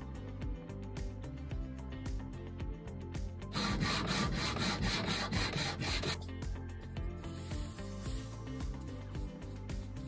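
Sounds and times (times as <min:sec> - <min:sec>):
background music: 0:00.0 - 0:10.0
sanding sponge rubbing wood: 0:03.6 - 0:06.2.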